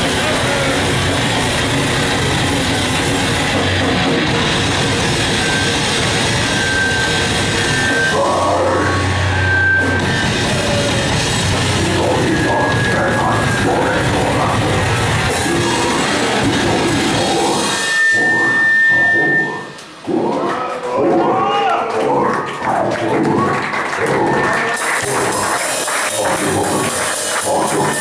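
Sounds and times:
heavy metal band playing live: 0.0s - 20.5s, 22.2s - 28.0s.

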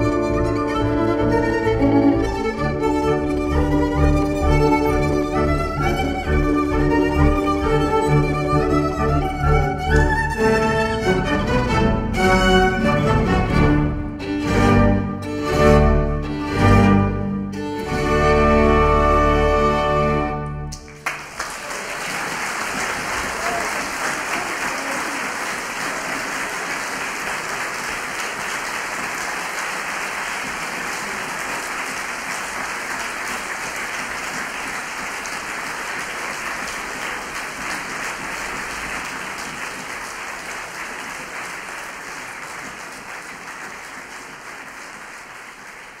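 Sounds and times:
audience applauding: 20.7s - 46.0s.

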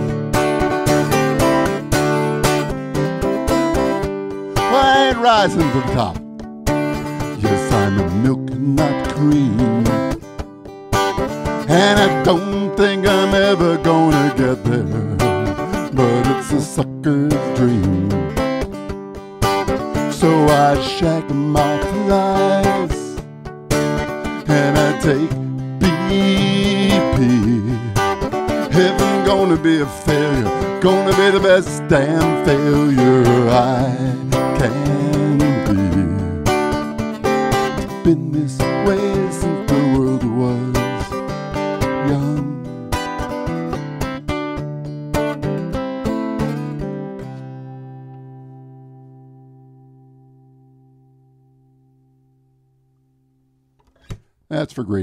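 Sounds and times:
man singing folk song: 0.0s - 10.4s, 11.2s - 18.8s, 19.4s - 43.6s
acoustic guitar strummed: 0.0s - 54.9s.

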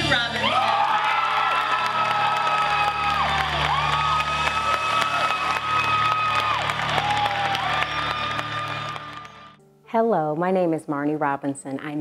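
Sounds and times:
audience applauding and cheering: 0.1s - 9.6s.

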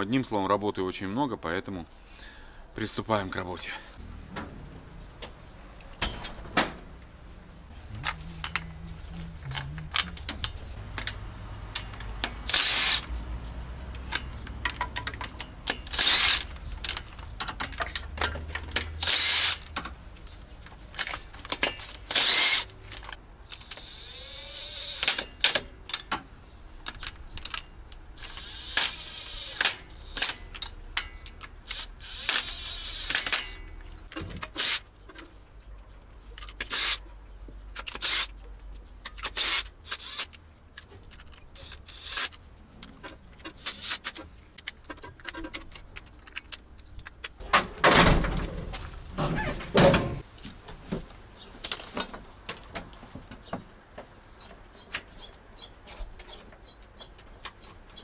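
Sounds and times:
metallic tool clicks and clinks: 9.5s - 19.8s
louder bursts of tool noise: 12.4s - 13.1s, 15.9s - 16.5s, 19.0s - 19.7s, 22.1s - 22.7s, 23.6s - 25.3s, 28.2s - 30.4s, 31.7s - 33.6s.

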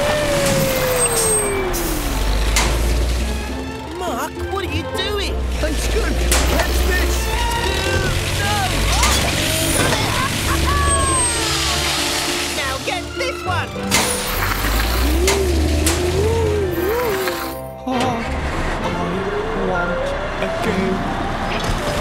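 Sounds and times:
cartoon background music: 0.0s - 22.0s
characters exclaiming and crying out: 4.0s - 11.5s.

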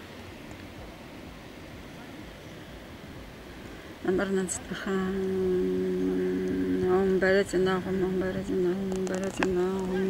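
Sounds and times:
person chanting a hummed note: 4.7s - 10.0s.

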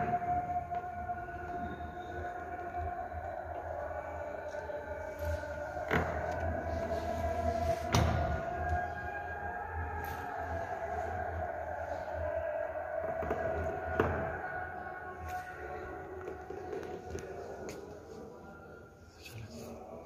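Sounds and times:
droning tone: 0.0s - 20.0s.

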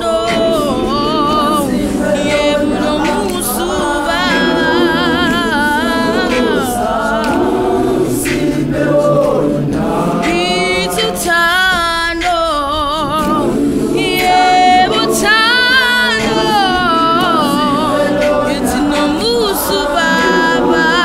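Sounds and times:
choir singing a cappella: 0.0s - 21.0s
lead voice singing with vibrato: 0.0s - 21.0s.

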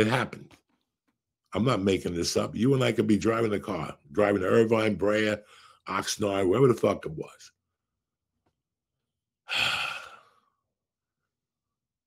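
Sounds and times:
man breathing out: 9.4s - 10.6s.

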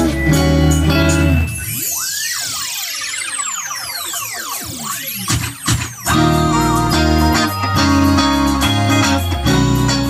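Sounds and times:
swooping pitch-sweep effect: 0.0s - 8.6s
backing beat: 4.9s - 10.0s.

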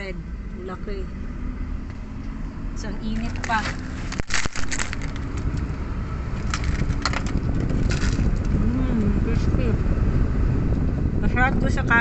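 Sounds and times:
car engine running: 0.0s - 12.0s
crackling handling noise: 3.0s - 5.7s, 6.4s - 8.5s.

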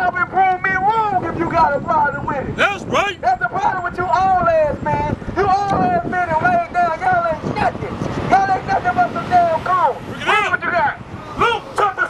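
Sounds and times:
man shouting through megaphone: 2.4s - 7.5s, 8.4s - 12.0s.

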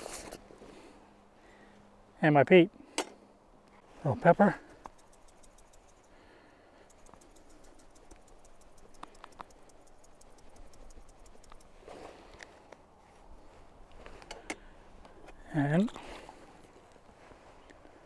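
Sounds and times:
rapid faint ticking: 4.8s - 11.8s.

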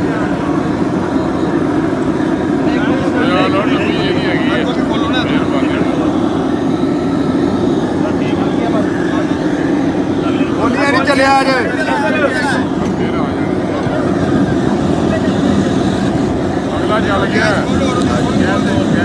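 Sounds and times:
roar of gas burners: 0.0s - 19.0s
voices talking: 0.0s - 19.0s.

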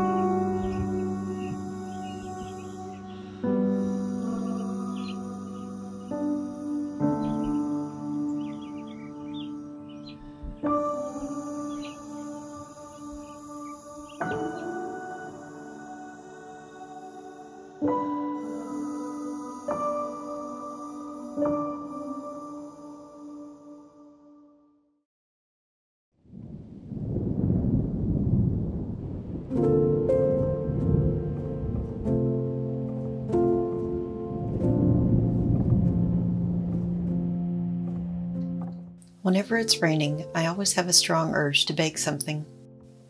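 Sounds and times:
soft music of held chords: 0.0s - 24.7s, 28.6s - 43.0s
thunder rumbling: 26.3s - 38.4s.

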